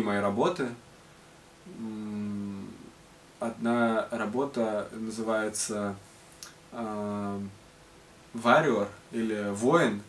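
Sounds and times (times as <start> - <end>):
man humming hesitantly: 1.7 - 2.9.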